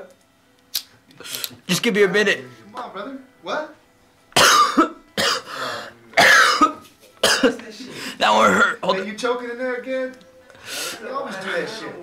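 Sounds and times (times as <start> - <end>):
man coughing: 4.4 - 5.6, 6.2 - 8.9.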